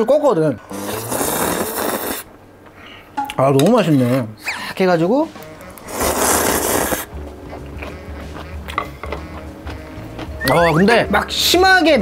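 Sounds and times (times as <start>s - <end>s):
loud slurp of noodles: 0.7s - 2.3s, 5.9s - 7.1s
background music: 4.9s - 12.0s.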